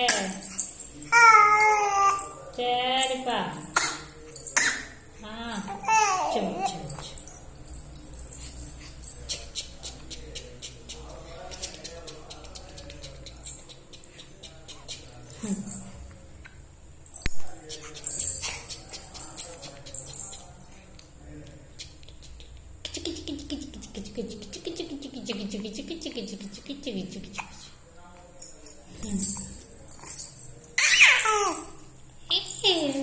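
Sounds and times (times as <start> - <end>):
baby cooing: 1.1 - 2.4, 5.7 - 7.0, 30.8 - 31.8.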